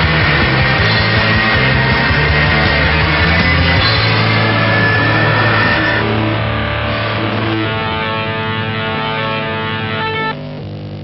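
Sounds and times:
loud rock band music: 0:00.0 - 0:10.4.

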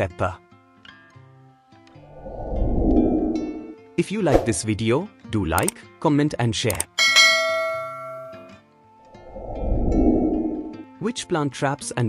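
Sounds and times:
notification bell chime: 0:07.0 - 0:08.5.

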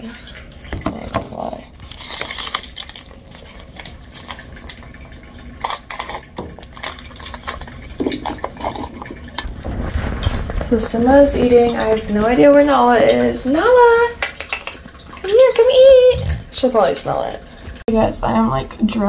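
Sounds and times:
plastic pouch crinkling: 0:01.8 - 0:04.9, 0:05.6 - 0:11.0.

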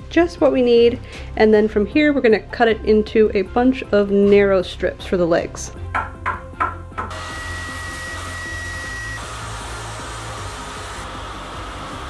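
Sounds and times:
table saw ripping wood: 0:07.1 - 0:12.0
thin high whine: 0:07.2 - 0:11.4.

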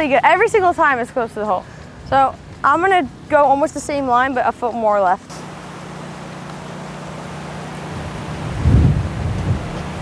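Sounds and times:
wind buffeting microphone: 0:00.0 - 0:05.0, 0:07.9 - 0:10.0.

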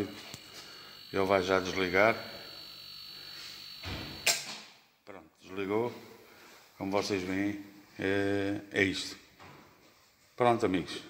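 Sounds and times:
air compressor humming: 0:00.0 - 0:04.3.

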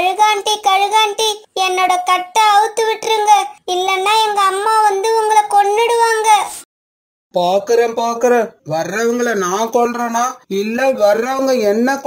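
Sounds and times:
high-pitched cartoon voice calling: 0:02.9 - 0:06.6.

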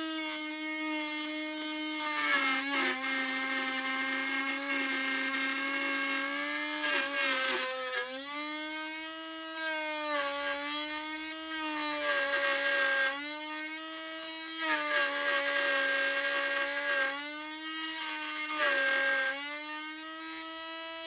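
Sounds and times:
rotary tool whining: 0:00.0 - 0:21.0.

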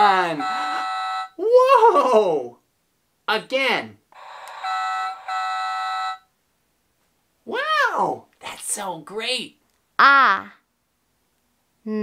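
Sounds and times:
electronic toy buzzing tone: 0:00.3 - 0:01.4, 0:04.2 - 0:06.3
woman exclaiming: 0:01.4 - 0:02.5.

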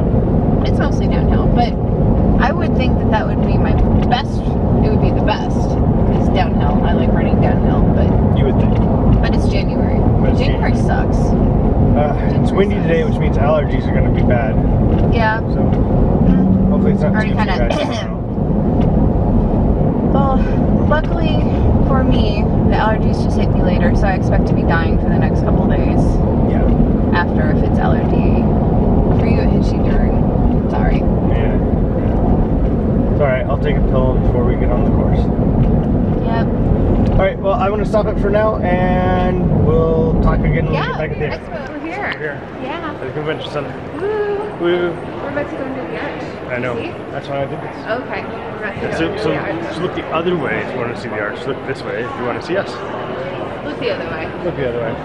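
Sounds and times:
moving vehicle rumble: 0:00.0 - 0:55.0
indistinct voices: 0:00.6 - 0:35.4, 0:36.1 - 0:55.0.

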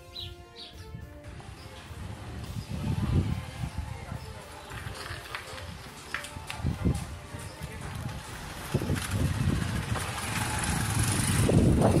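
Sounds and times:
motorcycle engine passing by: 0:07.8 - 0:12.0.

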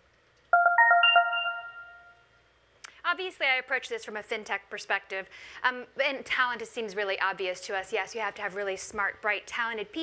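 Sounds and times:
electronic bell-like chime: 0:00.6 - 0:02.2.

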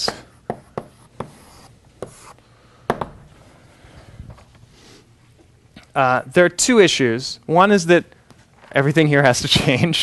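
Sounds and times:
chalk tapping on blackboard: 0:00.0 - 0:03.1
chalk scratching on blackboard: 0:00.4 - 0:02.4.

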